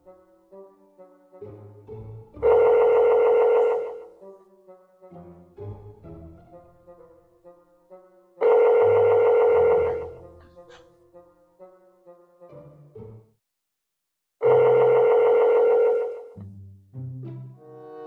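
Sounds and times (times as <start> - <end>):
telephone ringback tone: 2.4 - 4.1, 8.4 - 10.2, 14.4 - 16.3.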